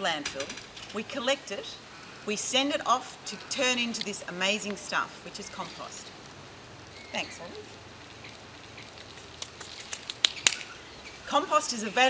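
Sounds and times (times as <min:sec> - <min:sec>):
outdoor background hiss: 0:00.0 - 0:12.0.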